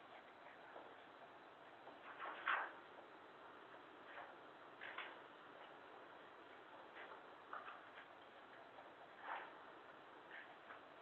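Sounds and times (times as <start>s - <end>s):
rustles: 0.0s - 11.0s.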